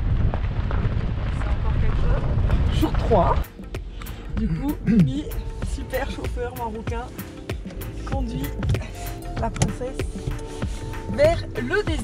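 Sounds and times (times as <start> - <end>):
vehicle road noise: 0.0 - 12.0
wind buffeting microphone: 0.0 - 12.0.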